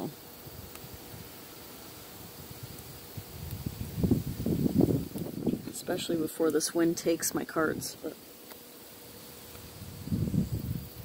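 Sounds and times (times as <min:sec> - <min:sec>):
wind blowing across microphone: 0:02.1 - 0:06.2, 0:09.5 - 0:11.0.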